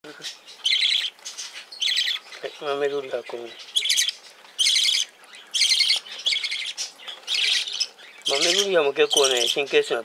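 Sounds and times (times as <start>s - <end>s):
parrot chick chattering calls: 0.2s - 2.6s, 3.5s - 9.7s.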